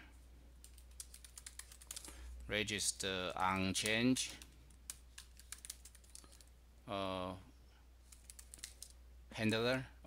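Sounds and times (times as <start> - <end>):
computer keyboard typing: 0.6 - 2.2, 3.3 - 6.5, 8.1 - 9.0.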